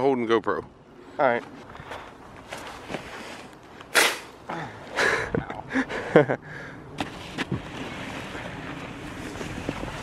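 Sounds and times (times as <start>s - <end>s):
sled scraping across crusty snow: 7.0s - 10.0s.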